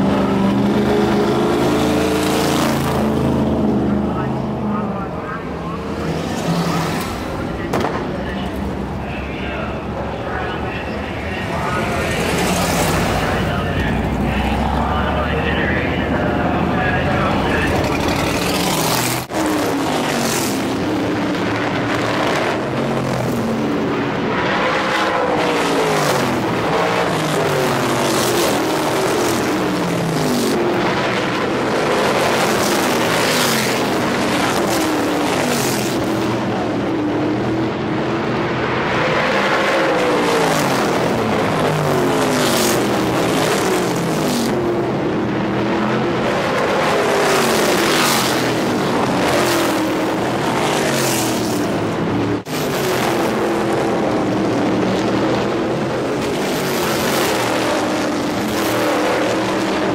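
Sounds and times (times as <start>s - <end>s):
race car engines passing: 0.0s - 59.9s.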